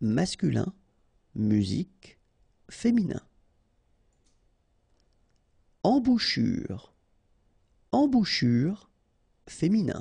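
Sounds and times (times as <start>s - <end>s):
man's voice: 0.0s - 0.8s, 1.4s - 3.3s, 5.8s - 6.9s, 8.0s - 8.9s, 9.5s - 10.0s.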